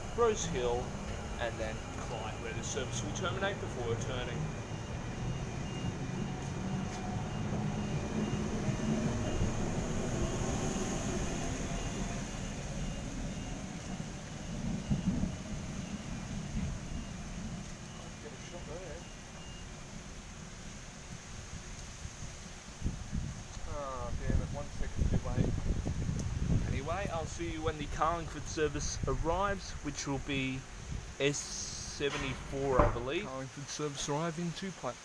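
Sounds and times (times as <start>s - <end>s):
electric train rumble: 0.0s - 21.4s
heavy rain: 0.0s - 35.0s.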